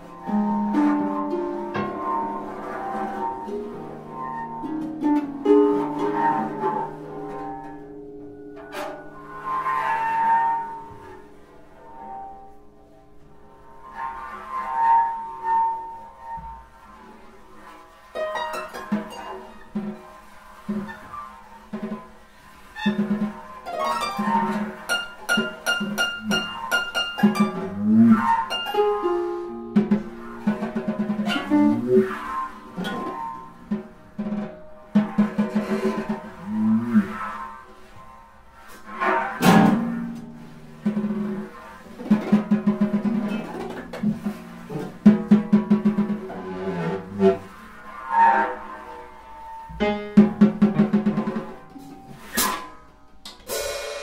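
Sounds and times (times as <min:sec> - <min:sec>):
harp: 0:00.0 - 0:53.8
drum kit: 0:18.2 - 0:37.4, 0:39.4 - 0:47.9, 0:49.7 - 0:54.0
grand piano: 0:48.7 - 0:53.0.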